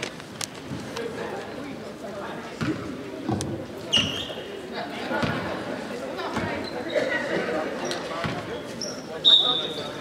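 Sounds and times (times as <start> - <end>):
voices chattering: 0.8 - 10.0.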